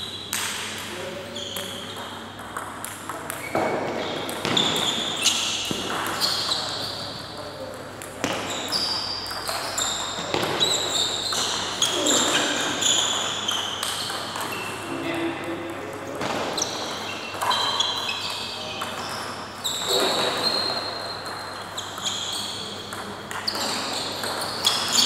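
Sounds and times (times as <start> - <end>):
high squeaks: 8.5 - 14.2.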